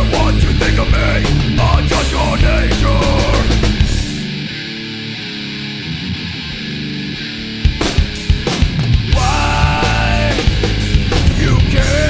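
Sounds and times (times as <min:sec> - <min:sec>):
heavy band with drums: 0:00.0 - 0:04.4, 0:06.4 - 0:12.0
guitar playing sustained chords: 0:01.3 - 0:12.0.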